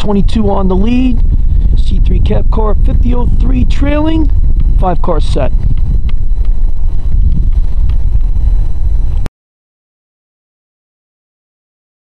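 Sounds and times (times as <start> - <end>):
wind buffeting microphone: 0.0 - 9.3.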